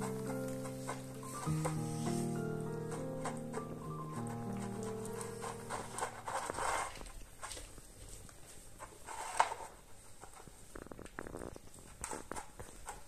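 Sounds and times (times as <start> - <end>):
background music: 0.0 - 6.5.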